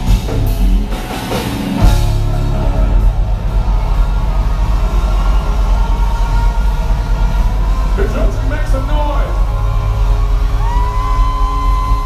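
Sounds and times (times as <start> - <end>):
rock band droning chord: 0.0 - 10.7.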